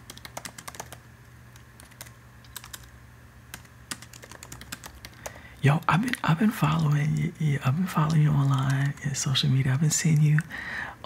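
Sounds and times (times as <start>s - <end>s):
laptop keyboard typing: 0.0s - 9.2s
faint low hum: 0.0s - 11.0s.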